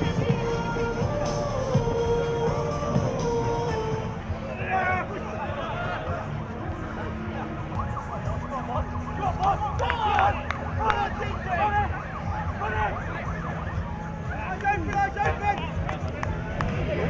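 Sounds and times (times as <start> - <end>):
spectators shouting and cheering: 9.1 - 13.4.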